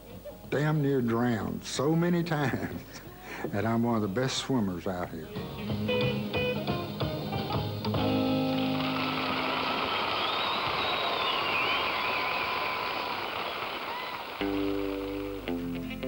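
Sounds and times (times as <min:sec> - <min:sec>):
rockabilly band playing: 0:05.2 - 0:10.5, 0:14.3 - 0:16.0
audience applause and cheering: 0:07.9 - 0:15.6
wavering whistle: 0:08.9 - 0:14.6.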